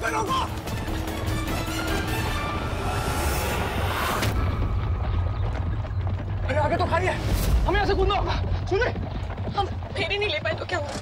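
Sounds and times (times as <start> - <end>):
music: 0.0 - 5.9.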